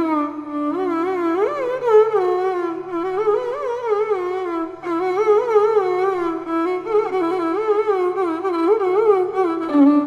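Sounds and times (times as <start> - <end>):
faint tanpura drone: 0.0 - 10.0
violin slow ornamented melody: 0.0 - 10.0.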